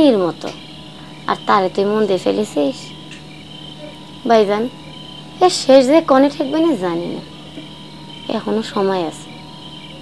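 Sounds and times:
woman speaking: 0:00.0 - 0:00.6, 0:01.2 - 0:03.0, 0:03.8 - 0:04.8, 0:05.4 - 0:07.3, 0:08.2 - 0:09.4
crickets chirring: 0:00.0 - 0:10.0.

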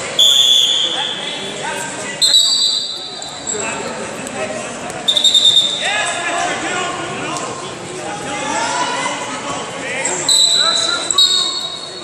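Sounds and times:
referee's whistle blasts: 0:00.2 - 0:01.5, 0:02.2 - 0:03.4, 0:05.1 - 0:06.0, 0:10.2 - 0:12.0.

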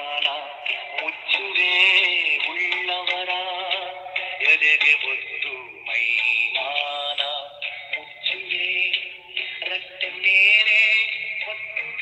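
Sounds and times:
musical accompaniment: 0:00.0 - 0:12.0
person singing: 0:00.0 - 0:12.0.

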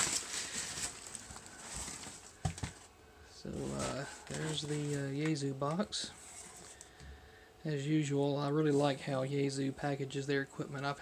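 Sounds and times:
foam packing peanuts rustling: 0:00.0 - 0:06.9.

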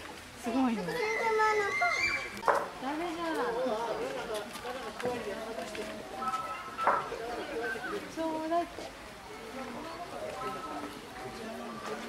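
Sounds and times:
child's high voice: 0:00.9 - 0:02.5.

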